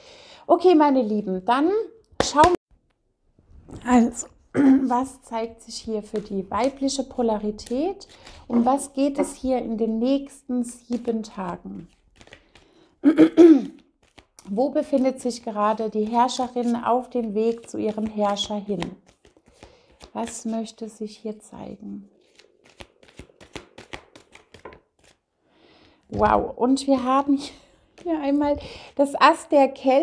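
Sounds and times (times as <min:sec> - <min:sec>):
woman clearing throat: 0:04.5 - 0:04.9, 0:13.0 - 0:13.8
cards being shuffled: 0:05.7 - 0:09.8, 0:10.6 - 0:12.8, 0:14.0 - 0:14.6, 0:15.3 - 0:20.9, 0:22.2 - 0:25.2.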